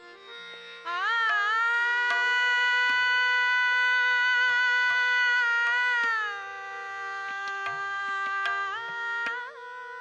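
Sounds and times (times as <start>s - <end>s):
tabla strokes: 0.0s - 10.0s
tanpura drone: 0.0s - 10.0s.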